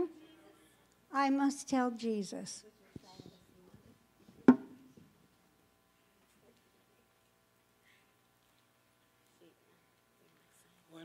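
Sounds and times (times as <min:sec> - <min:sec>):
faint knocks: 0:04.5 - 0:04.8
loud sharp thump: 0:04.5 - 0:04.8.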